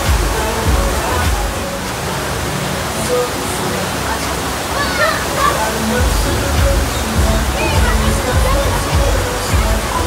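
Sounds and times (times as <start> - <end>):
voices calling out: 0.0 - 10.0
water rushing: 0.0 - 10.0.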